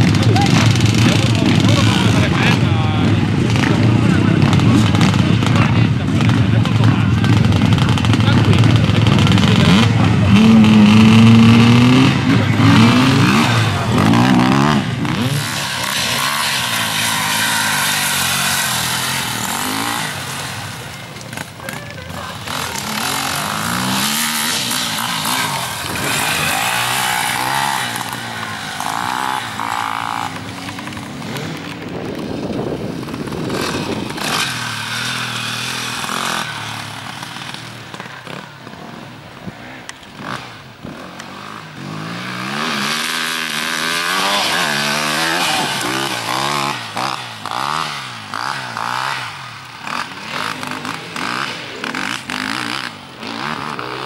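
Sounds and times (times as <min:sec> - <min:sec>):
motorcycle engine revving: 0:00.0 - 0:54.0.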